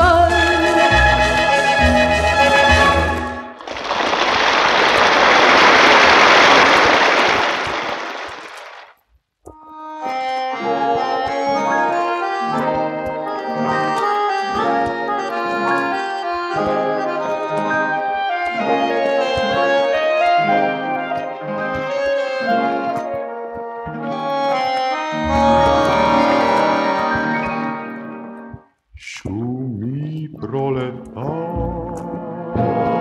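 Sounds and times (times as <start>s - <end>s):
audience applause: 1.8s - 8.9s, 25.3s - 27.7s
male vocal quartet singing: 30.4s - 33.0s.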